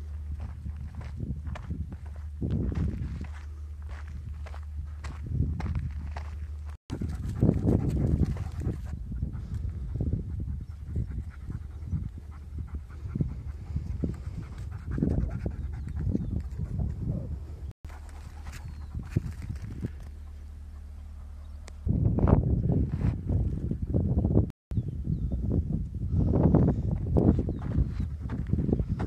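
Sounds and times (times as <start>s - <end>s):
footsteps on loose dirt: 0.0s - 8.8s, 17.8s - 21.8s, 26.9s - 29.0s
low rumble: 0.0s - 29.0s
dog panting: 6.9s - 16.6s.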